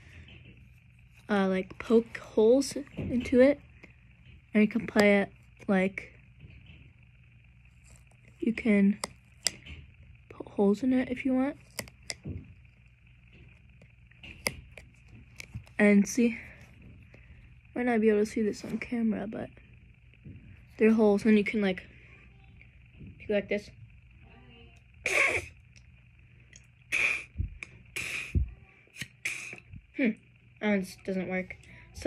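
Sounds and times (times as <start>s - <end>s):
breathy blows into straw whistle: 26.9s - 27.4s, 28.0s - 28.4s, 29.2s - 29.7s.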